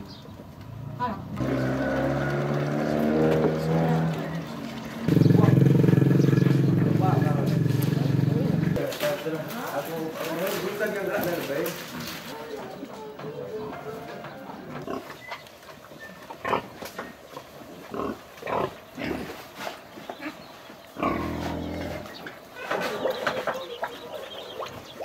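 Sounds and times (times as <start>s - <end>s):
pigs grunting: 1.4s - 25.0s.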